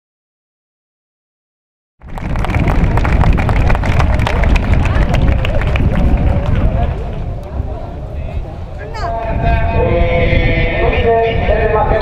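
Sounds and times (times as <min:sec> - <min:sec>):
people's voices: 0:03.4 - 0:12.0.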